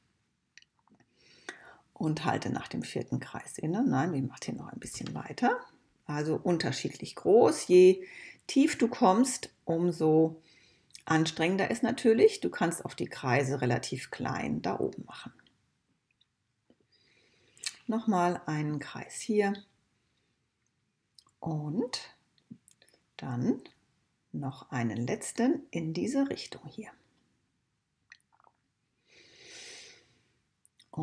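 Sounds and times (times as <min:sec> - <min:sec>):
soft breath: 0:01.1 - 0:02.0, 0:08.0 - 0:08.4, 0:10.4 - 0:10.9, 0:16.8 - 0:17.6, 0:29.0 - 0:30.4
woman speaking: 0:02.0 - 0:10.4, 0:11.0 - 0:15.4, 0:17.6 - 0:19.7, 0:21.4 - 0:22.2, 0:23.2 - 0:23.7, 0:24.4 - 0:27.0
mouth click: 0:17.6 - 0:17.9.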